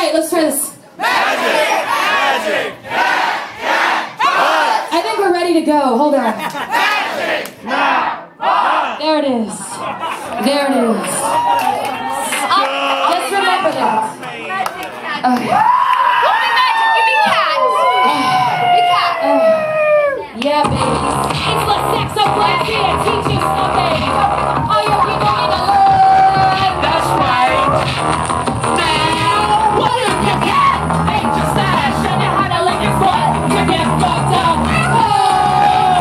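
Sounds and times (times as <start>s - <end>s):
crowd shouting in unison: 1.0s - 4.9s, 6.6s - 9.0s, 34.5s - 36.0s
audience cheering and whooping: 11.0s - 13.2s, 15.4s - 20.3s, 25.6s - 28.0s, 34.4s - 36.0s.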